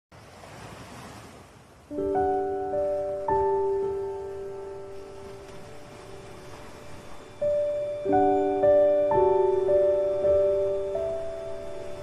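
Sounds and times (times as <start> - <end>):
ocean surf: 0.1 - 12.0
piano notes: 1.9 - 12.0.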